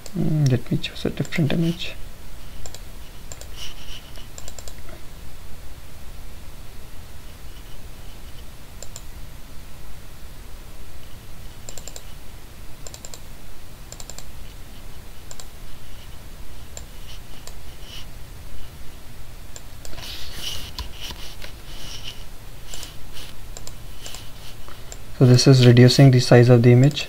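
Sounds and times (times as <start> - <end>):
low steady hum: 0.0 - 27.0
computer mouse clicking: 2.6 - 5.0, 8.8 - 9.1, 11.6 - 12.1, 12.8 - 13.2, 13.9 - 14.3, 15.3 - 15.5, 19.5 - 20.1, 22.7 - 24.3.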